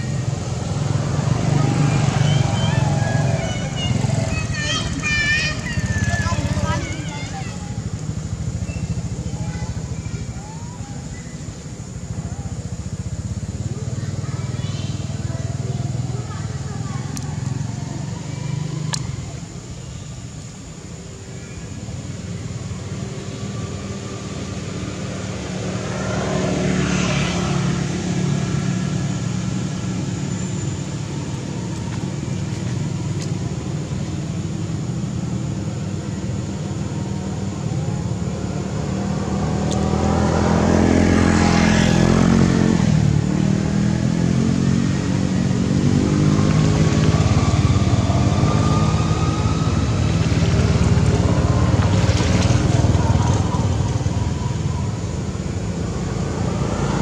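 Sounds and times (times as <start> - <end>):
steady engine rumble: 0.0 - 57.0
vehicles passing by: 0.0 - 57.0.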